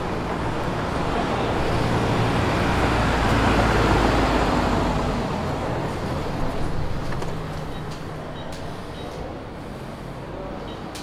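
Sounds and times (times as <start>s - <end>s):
car driving on cobblestones: 0.0s - 9.5s.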